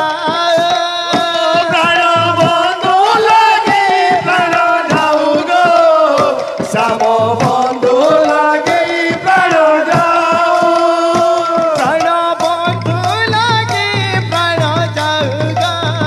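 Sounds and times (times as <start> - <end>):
barrel drums: 0.0 - 16.0
hand percussion: 0.0 - 16.0
men chanting together: 1.2 - 12.8.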